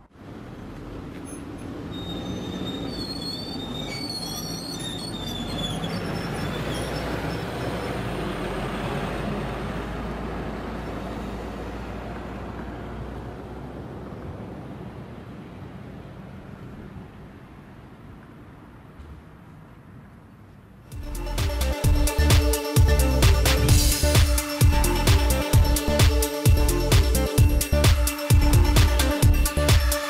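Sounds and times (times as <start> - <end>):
bus driving off: 0.0 - 30.0.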